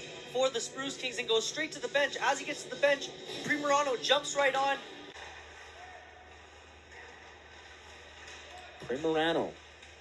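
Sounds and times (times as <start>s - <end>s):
commentator speaking: 0.3s - 4.9s.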